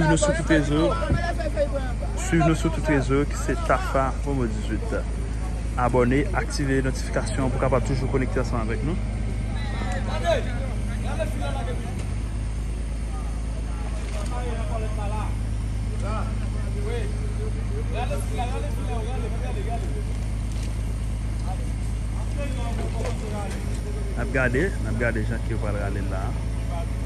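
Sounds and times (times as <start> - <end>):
faint voices calling: 0.0 - 27.0
water pump engine droning: 0.0 - 27.0.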